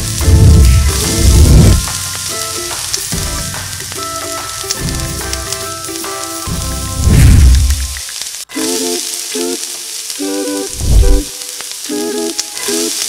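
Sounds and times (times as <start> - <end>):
background music: 0.0 - 13.0
meat sizzling on a grill: 0.0 - 13.0.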